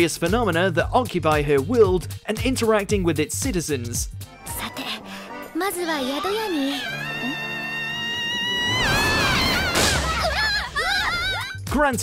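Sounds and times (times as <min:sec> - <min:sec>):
background music: 0:00.0 - 0:12.0
wavering cries: 0:05.6 - 0:11.6.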